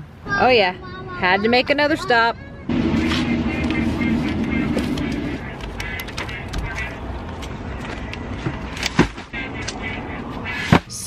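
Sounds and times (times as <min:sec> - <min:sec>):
hand truck wheels rolling on concrete: 0:01.4 - 0:06.6.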